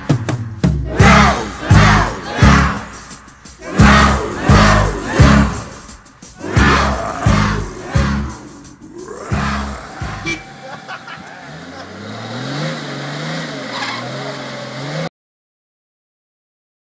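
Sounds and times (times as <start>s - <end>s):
heavy low drum beats: 0.0s - 10.5s.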